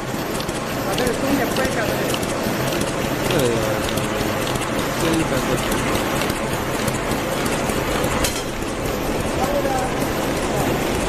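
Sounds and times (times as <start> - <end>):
envelope machine clattering: 0.0 - 11.0.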